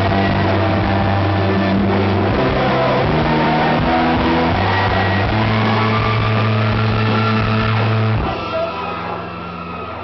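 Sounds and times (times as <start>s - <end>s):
rock band holding low chord: 0.0s - 10.0s.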